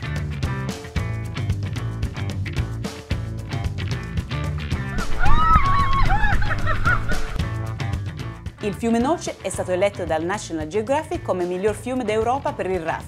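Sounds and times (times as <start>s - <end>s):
music with steady beat: 0.0s - 12.6s.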